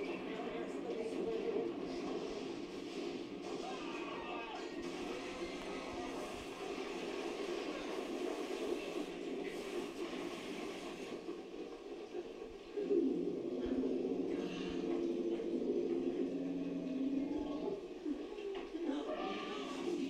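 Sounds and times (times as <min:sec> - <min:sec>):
voices: 0:00.0 - 0:02.7, 0:03.4 - 0:09.5, 0:11.9 - 0:20.0
film music on television: 0:00.0 - 0:20.0.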